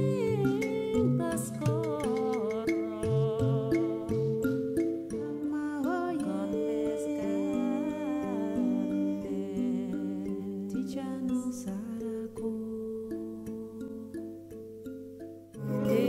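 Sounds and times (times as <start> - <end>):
woman singing wordless melody: 0.0 - 14.6, 15.6 - 16.0
long held instrumental notes: 15.6 - 16.0.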